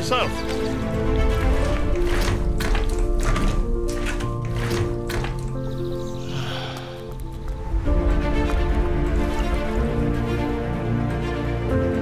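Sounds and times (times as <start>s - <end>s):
music of sustained notes: 0.0s - 12.0s.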